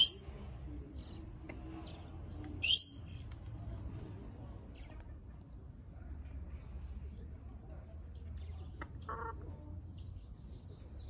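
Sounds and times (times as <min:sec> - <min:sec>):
high-pitched bird chirps: 0:00.0 - 0:00.3, 0:02.3 - 0:03.8.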